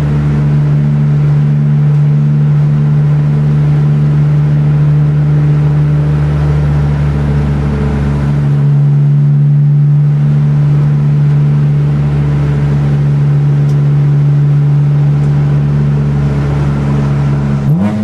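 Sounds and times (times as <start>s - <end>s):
car engine droning at cruise: 0.0s - 18.0s
road noise: 0.0s - 18.0s.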